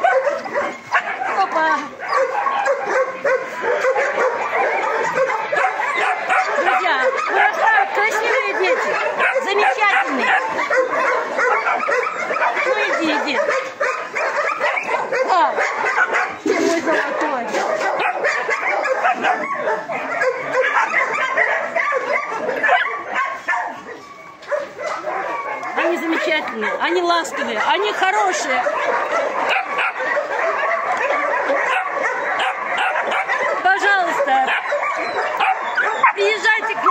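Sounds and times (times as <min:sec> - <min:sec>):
puppies yipping and whining: 0:00.0 - 0:36.9.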